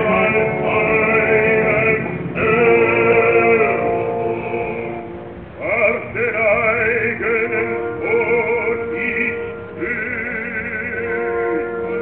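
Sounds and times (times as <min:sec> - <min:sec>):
opera orchestra: 0:00.0 - 0:12.0
operatic singing with vibrato: 0:00.0 - 0:12.0.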